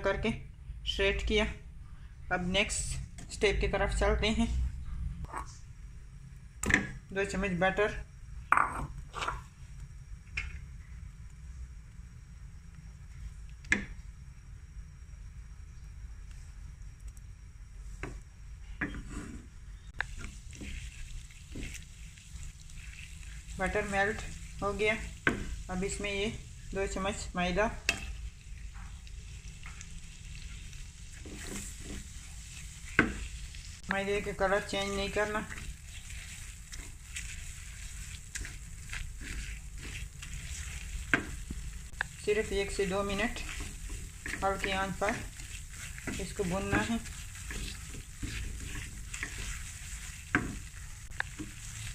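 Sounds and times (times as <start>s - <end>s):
steady low hum: 0.0s - 51.9s
butter sizzling: 19.9s - 51.9s
spatula scraping and tapping pan: 20.0s - 25.6s, 27.9s - 29.0s, 31.1s - 34.0s, 34.6s - 51.9s.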